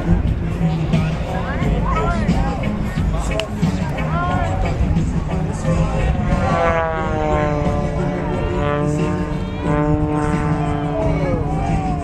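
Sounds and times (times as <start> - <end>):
propeller plane engine buzzing: 0.0 - 12.0.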